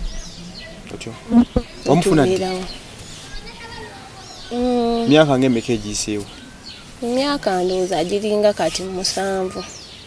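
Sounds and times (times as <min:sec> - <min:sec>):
insect buzzing: 0:01.2 - 0:03.4.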